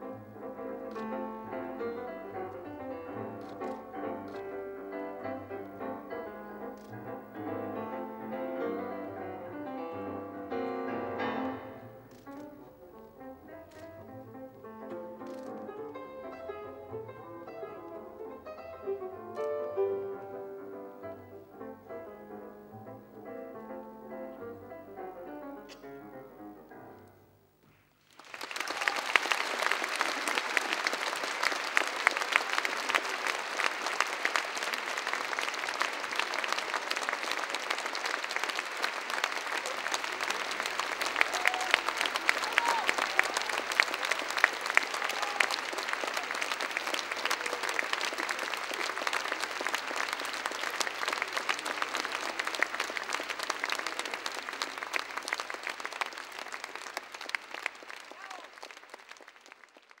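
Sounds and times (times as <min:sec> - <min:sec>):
audience applauding: 0:00.9 - 0:10.1, 0:14.9 - 0:16.5, 0:28.0 - 1:00.0
shouts from audience: 0:28.6 - 0:29.2, 0:41.1 - 0:43.8, 0:44.8 - 0:45.8, 0:58.1 - 0:58.6.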